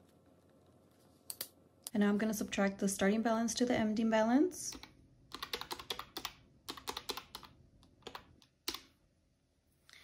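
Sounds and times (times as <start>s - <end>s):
calculator keys clicking: 4.7s - 8.9s.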